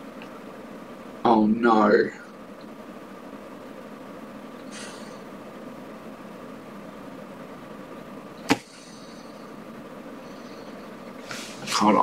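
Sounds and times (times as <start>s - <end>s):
room hiss: 0.0s - 12.0s.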